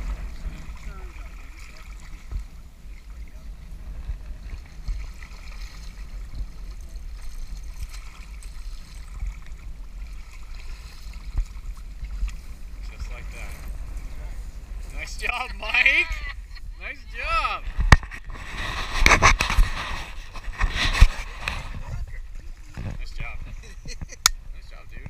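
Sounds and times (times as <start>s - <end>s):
river water splashing: 0.0s - 24.5s
wind rumble on microphone: 0.0s - 25.0s.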